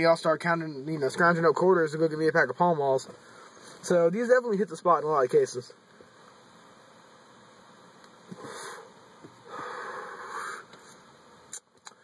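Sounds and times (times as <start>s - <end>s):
man breathing smoke in and out: 8.2s - 12.0s.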